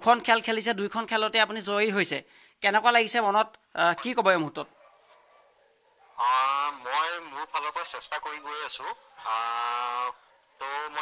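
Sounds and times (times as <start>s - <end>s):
man's voice through phone speaker: 6.2s - 11.0s.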